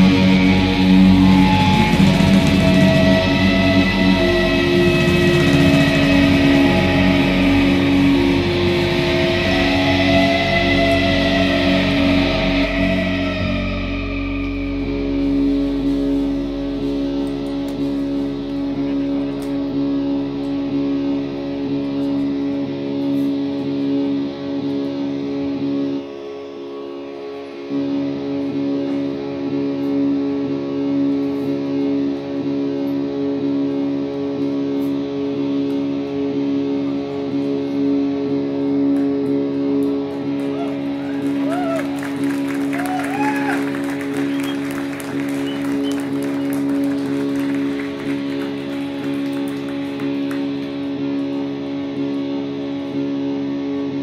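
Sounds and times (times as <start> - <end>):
electric guitars droning: 0.0 - 54.0
sliding guitar notes: 0.0 - 54.0.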